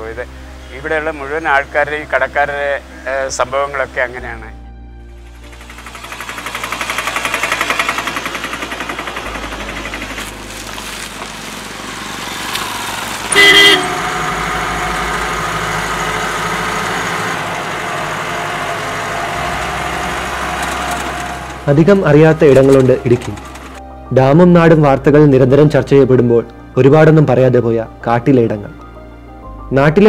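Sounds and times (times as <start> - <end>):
vehicle running noise: 5.0 - 23.9
motorcycle passing: 5.2 - 23.8
car horn honk: 12.4 - 16.0.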